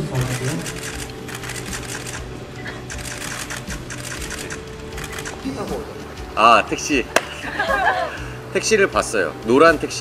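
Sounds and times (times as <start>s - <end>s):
camera shutters clicking: 0.1s - 2.3s, 2.9s - 5.5s.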